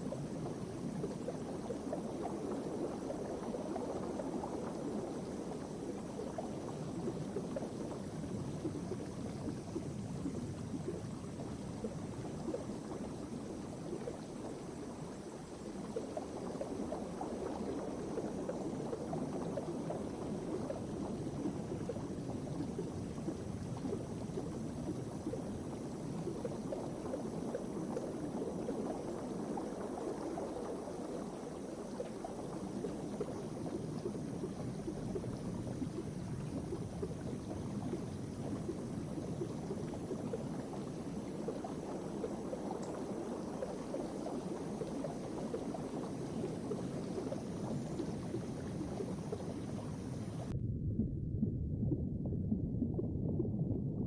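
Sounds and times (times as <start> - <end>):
water bubbling and trickling: 0.0 - 54.0.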